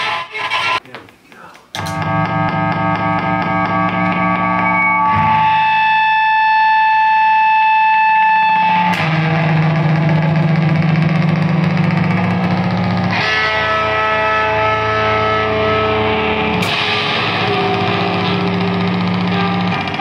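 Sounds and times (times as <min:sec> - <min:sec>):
distorted electric guitar drone: 0:01.8 - 0:20.0.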